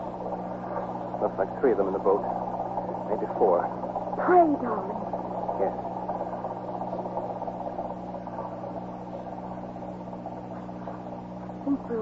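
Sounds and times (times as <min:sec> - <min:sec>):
low recording hum: 0:00.0 - 0:12.0
motorboat engine running: 0:00.0 - 0:12.0.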